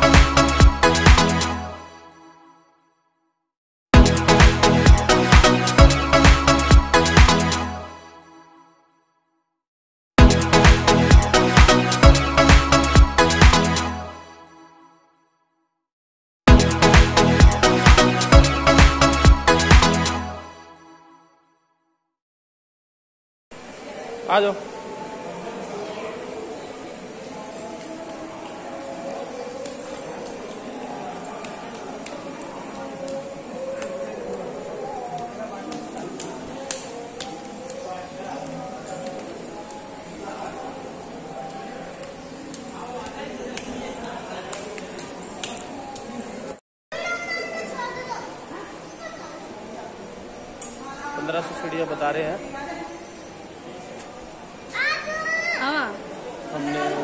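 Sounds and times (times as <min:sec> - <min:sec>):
low background murmur: 0:23.6 - 0:57.0
indistinct voices talking: 0:24.0 - 0:51.7
child calling out: 0:54.8 - 0:55.8.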